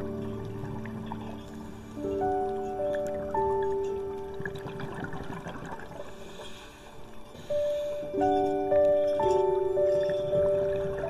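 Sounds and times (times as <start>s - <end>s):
soft piano music: 0.0s - 11.0s
water bubbling and trickling: 0.0s - 11.0s.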